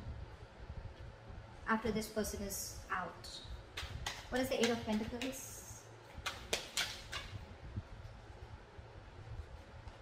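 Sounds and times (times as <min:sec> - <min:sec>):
low rumble of card handling: 0:06.0 - 0:10.0.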